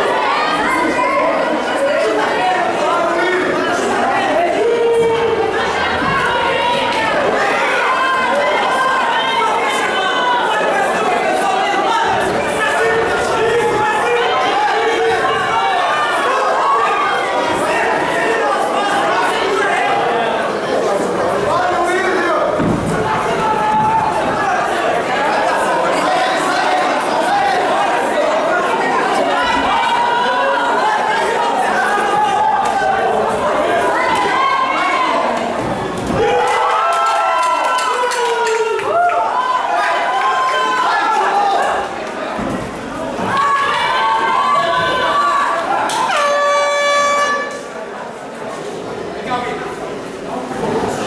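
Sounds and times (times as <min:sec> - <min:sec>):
people shouting: 0:00.0 - 0:20.3, 0:21.5 - 0:47.8
crowd chatter: 0:00.0 - 0:51.0
air horn blast: 0:45.9 - 0:47.7.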